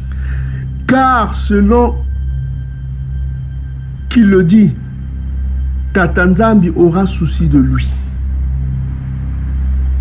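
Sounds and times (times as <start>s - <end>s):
dark ambient drone music: 0.0s - 10.0s.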